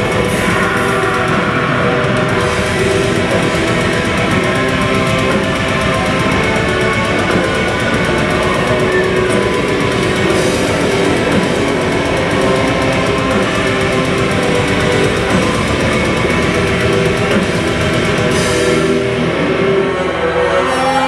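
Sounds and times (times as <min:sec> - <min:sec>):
heavy metal band playing: 0:00.0 - 0:21.0.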